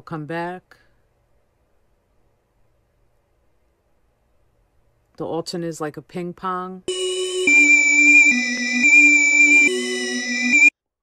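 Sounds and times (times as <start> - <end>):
sustained synth chords loop: 6.9 - 10.7.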